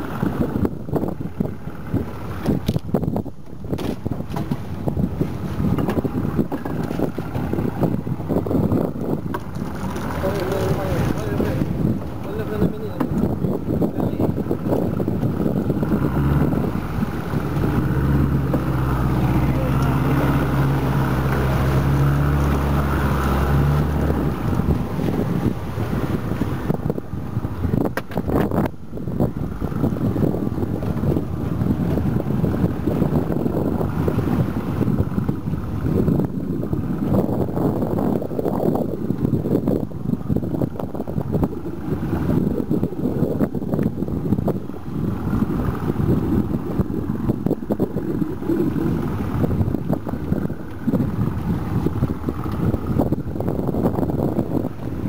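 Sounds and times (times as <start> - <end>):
boat engine running: 0.0 - 55.0
wind buffeting microphone: 0.0 - 55.0.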